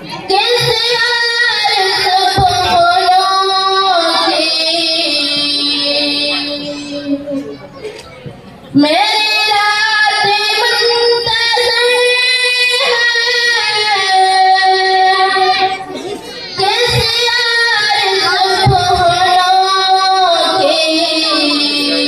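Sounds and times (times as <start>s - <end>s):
girl singing into microphone: 0.0s - 22.0s.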